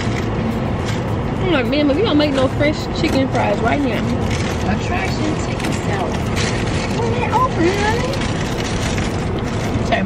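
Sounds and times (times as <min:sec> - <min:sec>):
car engine idling: 0:00.0 - 0:10.0
voices talking: 0:01.4 - 0:08.4.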